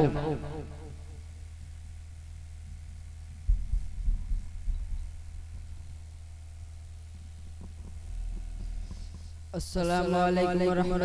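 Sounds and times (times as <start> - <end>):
low electrical hum: 0.0 - 11.0
microphone handling thumps: 3.4 - 5.9, 7.4 - 9.3.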